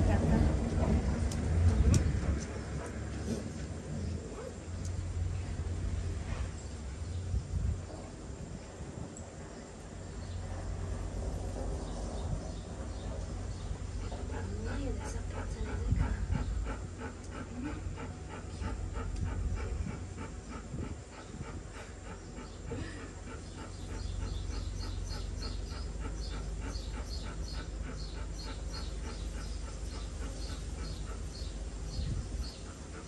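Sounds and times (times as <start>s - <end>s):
dog panting rapidly: 12.8s - 33.0s.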